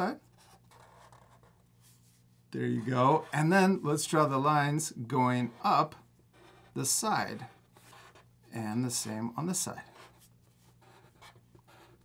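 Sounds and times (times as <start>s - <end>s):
marker scratching on paper: 0.2s - 3.7s, 5.2s - 12.0s.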